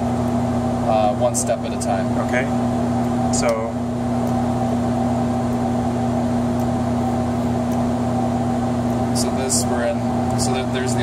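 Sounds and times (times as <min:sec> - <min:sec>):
computer hum and fan noise: 0:00.0 - 0:11.0.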